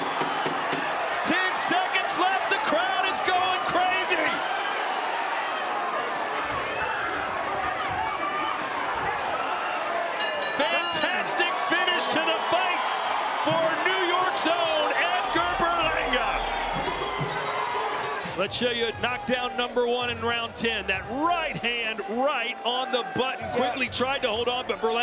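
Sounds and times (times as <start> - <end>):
crowd shouting and cheering: 0.0 - 25.0.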